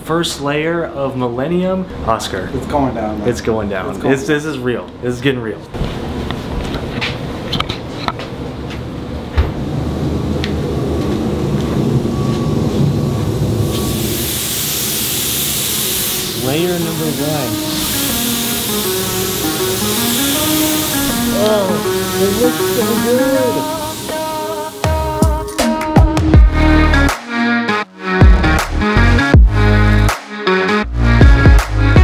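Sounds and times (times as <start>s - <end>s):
paint spray gun hissing: 14.0s - 25.2s
music with singing voice: 19.8s - 32.0s.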